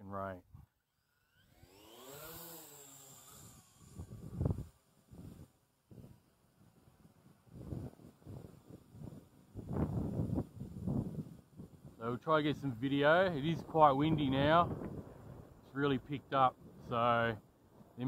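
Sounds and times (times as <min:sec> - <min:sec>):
drone motors whining: 0:00.9 - 0:06.2
wind buffeting microphone: 0:03.8 - 0:06.1, 0:07.4 - 0:17.0.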